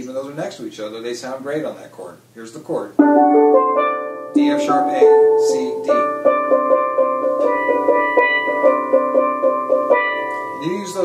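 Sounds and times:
steelpan struck with mallets: 3.0s - 11.0s.

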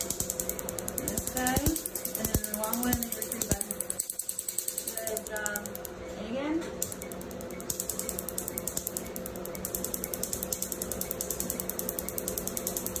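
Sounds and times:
tattoo machine humming and ticking: 0.0s - 13.0s.

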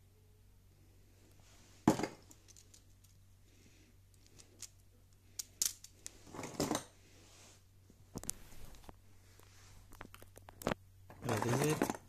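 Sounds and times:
plastic parts clacking: 1.9s - 3.2s, 5.4s - 6.9s, 9.9s - 12.0s
plastic pieces rattling clatter: 2.1s - 3.2s.

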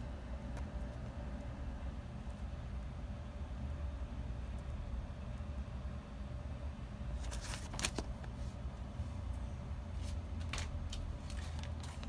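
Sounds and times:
steady low hum: 0.0s - 12.0s
plastic sleeves crinkling: 7.2s - 8.4s.

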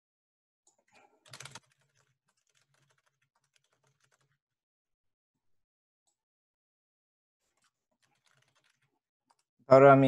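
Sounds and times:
fast keyboard typing: 1.0s - 4.4s, 7.4s - 9.5s.

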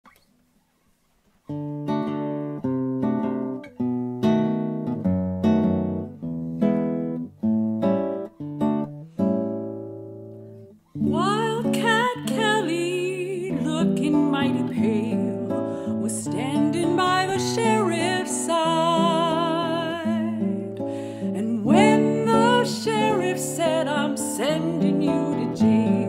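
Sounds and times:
classical guitar plucked chords: 1.4s - 26.0s
soprano voice singing: 11.0s - 26.0s.

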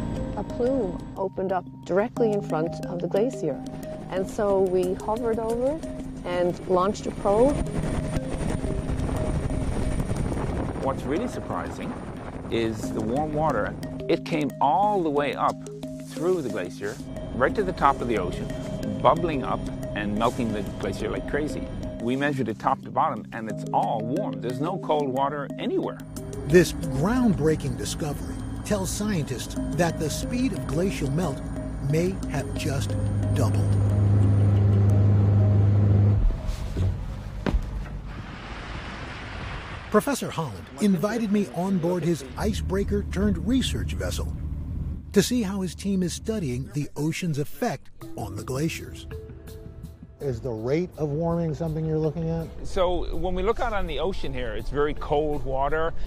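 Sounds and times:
helicopter rotor and engine: 6.7s - 12.4s.

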